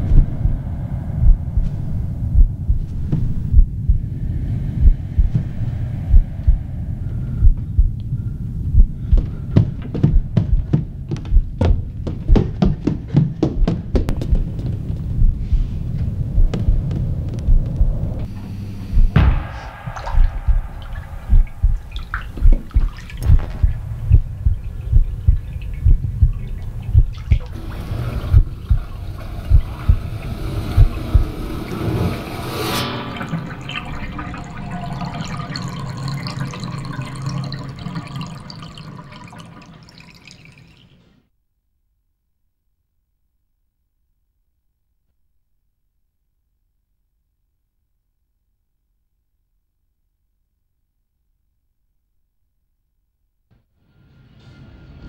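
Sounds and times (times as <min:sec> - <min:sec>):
deep heartbeat-like pulse: 0:00.0 - 0:32.1
water: 0:19.7 - 0:41.3.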